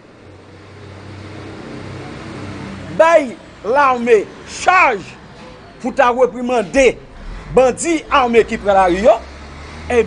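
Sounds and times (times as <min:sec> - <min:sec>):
low engine hum: 0:06.8 - 0:09.9.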